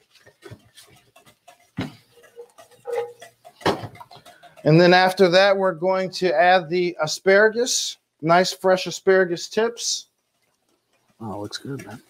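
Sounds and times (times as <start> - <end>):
cooking utensils clicking and scraping: 0.0 - 12.0.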